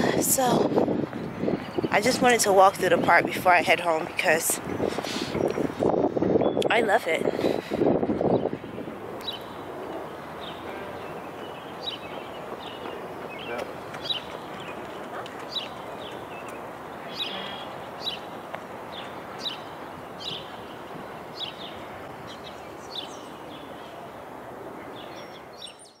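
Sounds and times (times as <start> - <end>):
outdoor background noise: 0.0 - 26.0
small birds chirping: 1.2 - 2.5, 3.9 - 26.0.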